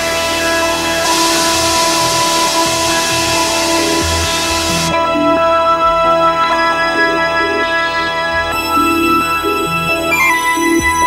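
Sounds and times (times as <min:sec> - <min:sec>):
low bass notes: 0:00.0 - 0:06.4
synthesizer chord: 0:00.0 - 0:07.3
bright hiss: 0:00.4 - 0:05.0.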